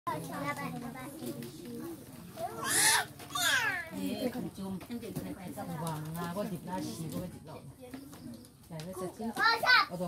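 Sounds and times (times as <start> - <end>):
children talking: 0.1 - 10.0
high-pitched cries: 2.6 - 3.8.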